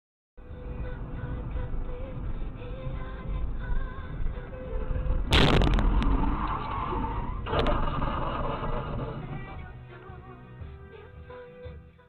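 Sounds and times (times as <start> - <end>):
car engine and road noise: 0.4 - 11.0.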